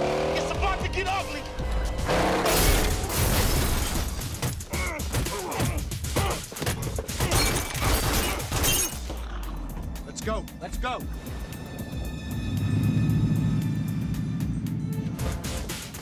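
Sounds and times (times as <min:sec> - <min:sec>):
action film music: 0:00.0 - 0:16.0
crashes and impacts: 0:02.2 - 0:04.7.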